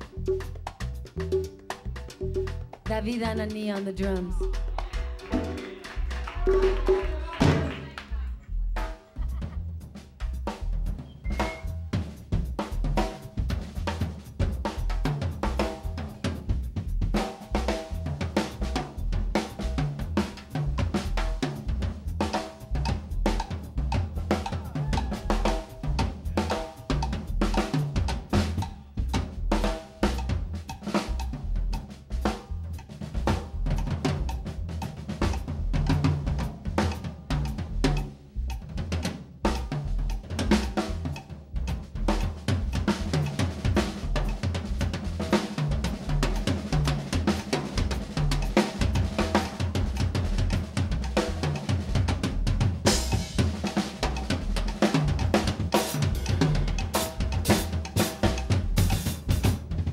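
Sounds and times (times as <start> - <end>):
jazz drum kit: 0.0 - 59.9.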